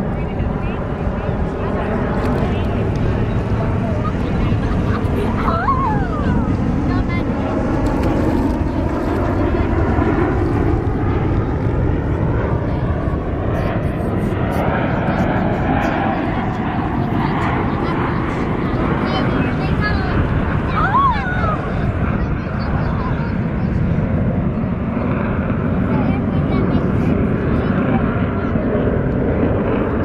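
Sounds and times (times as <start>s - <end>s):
jet engine rumble: 0.0s - 30.0s.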